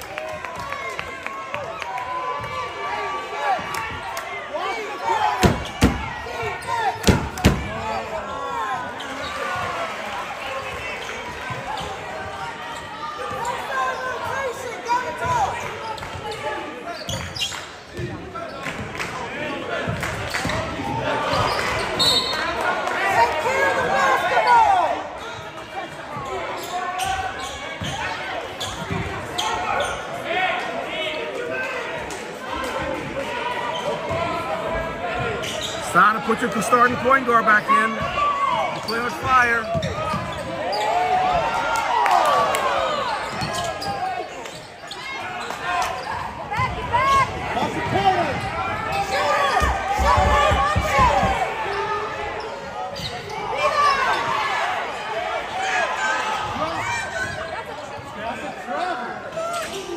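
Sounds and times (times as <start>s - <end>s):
voices echoing in gym: 0.0s - 59.9s
basketball bouncing on wooden court: 39.6s - 40.5s, 49.5s - 51.6s.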